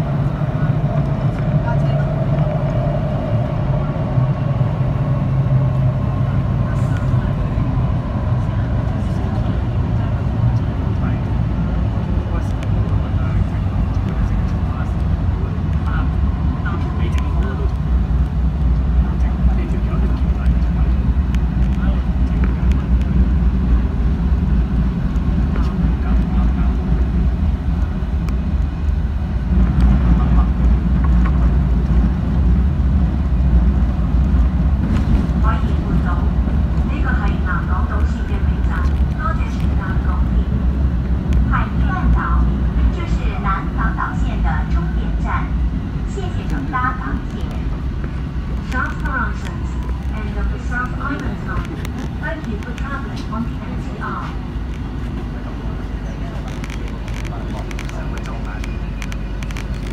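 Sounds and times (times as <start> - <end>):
train wheels rumbling on track: 0.0 - 59.9.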